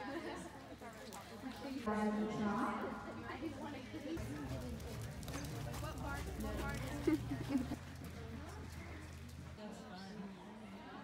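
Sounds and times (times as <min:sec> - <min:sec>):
horses' hoofbeats: 0:04.2 - 0:09.6.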